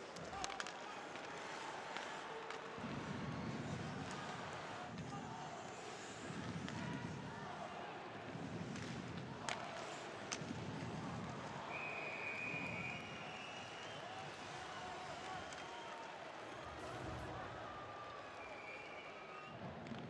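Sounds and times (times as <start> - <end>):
crowd noise: 14.8 - 19.4
high whistle: 16.4 - 19.6.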